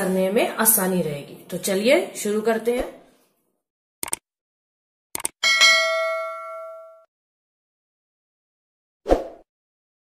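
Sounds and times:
short clicks: 4.0 - 4.2, 5.2 - 5.4
notification bell ding: 5.4 - 7.1.

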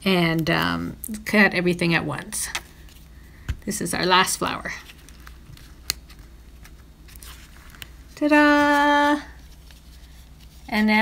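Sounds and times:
low room hum: 0.0 - 11.0
cardstock rustling: 4.5 - 11.0.

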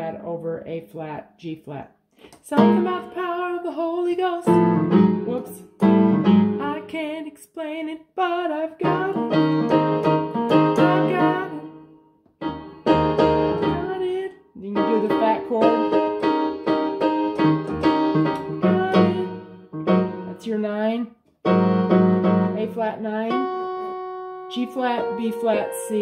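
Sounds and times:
keyboard playing gospel chords: 4.5 - 6.7, 8.8 - 20.5, 21.4 - 26.0.

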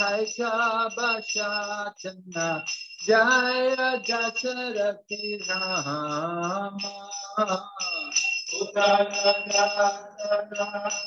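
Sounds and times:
man singing a devotional chant: 0.0 - 11.0
small hand cymbals ringing: 0.0 - 11.0.

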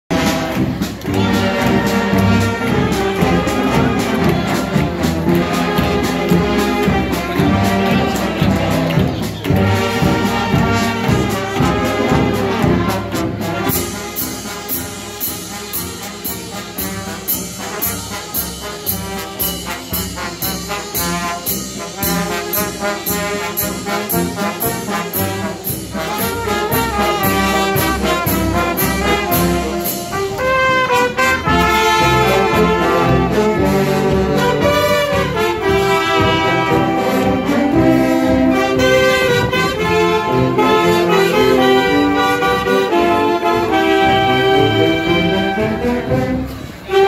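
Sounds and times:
bass drum and snare beat: 0.1 - 40.9
brass holding sustained notes: 0.1 - 47.0.

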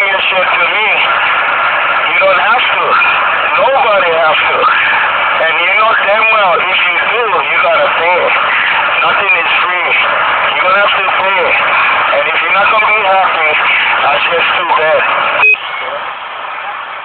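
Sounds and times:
indistinct speech: 0.0 - 1.2, 2.0 - 16.1
steady background noise: 0.0 - 17.0.

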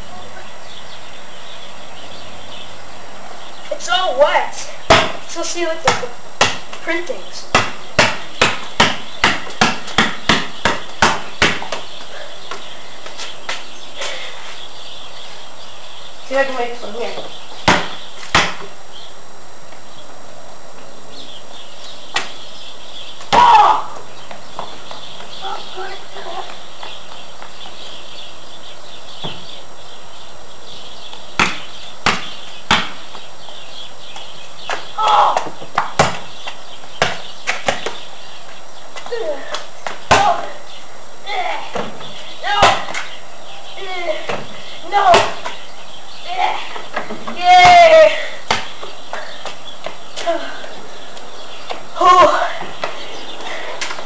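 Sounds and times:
boy shouting: 3.7 - 4.7, 5.3 - 6.0, 23.3 - 24.0, 35.0 - 35.5, 39.1 - 39.5, 40.1 - 40.6, 41.2 - 41.8, 42.4 - 43.0, 43.8 - 45.4, 46.2 - 48.4, 52.0 - 52.6
ball hitting hoop: 4.9 - 5.2, 5.8 - 6.8, 7.5 - 11.8, 17.6 - 18.7, 31.4 - 33.0, 34.7 - 36.3, 39.8 - 40.5, 42.6 - 43.1
basketball bouncing on concrete: 4.9 - 13.6, 17.6 - 18.8, 31.3 - 33.2, 34.7 - 38.0, 39.0 - 40.6, 44.2 - 45.6, 46.7 - 50.3.

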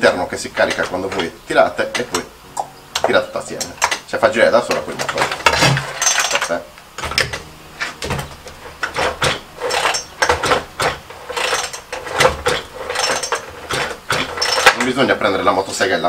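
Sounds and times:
chainsaw recoil starter ratcheting: 8.8 - 15.1.

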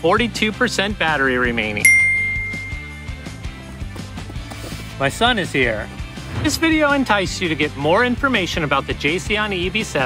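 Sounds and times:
background music: 0.0 - 10.0
bright bell ding: 1.8 - 3.2.

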